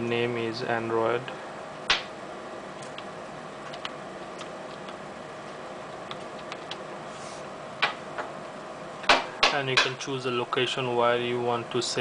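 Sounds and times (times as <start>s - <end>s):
faint steady hum: 0.0s - 12.0s
keyboard keys clicking: 6.0s - 6.8s.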